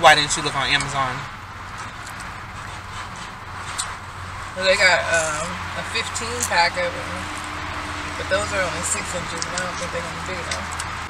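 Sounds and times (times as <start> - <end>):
car cabin hum and hiss: 0.0 - 11.0.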